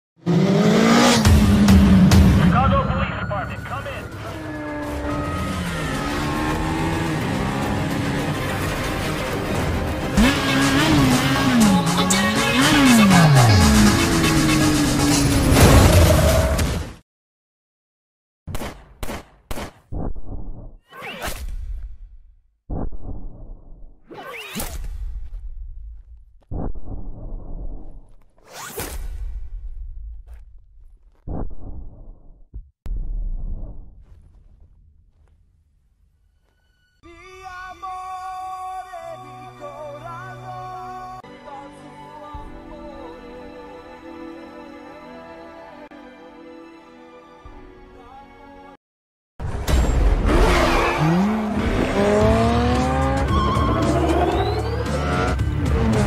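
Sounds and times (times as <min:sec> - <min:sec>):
vehicle engines revving: 0:00.2 - 0:02.6, 0:03.6 - 0:15.6, 0:50.2 - 0:56.0.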